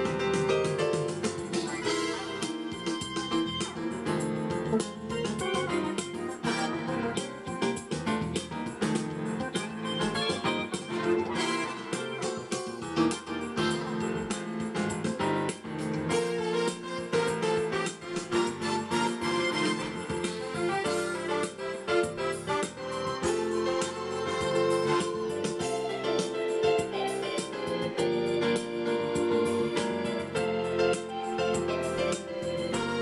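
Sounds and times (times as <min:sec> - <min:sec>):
digital keyboard playing: 0:00.0 - 0:33.0.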